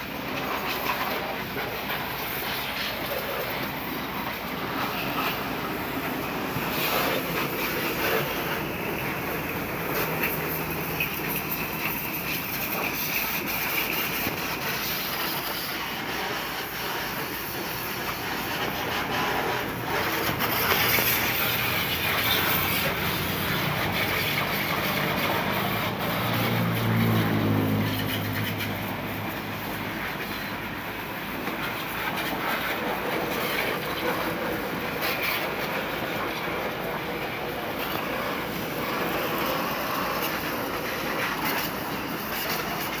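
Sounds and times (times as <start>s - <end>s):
pressure washer spraying metal: 0.0s - 43.0s
low engine hum: 17.3s - 32.2s.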